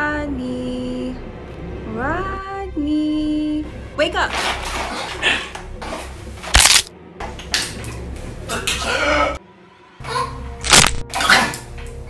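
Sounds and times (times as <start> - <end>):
sharp crack: 6.5 - 6.9, 10.6 - 11.2.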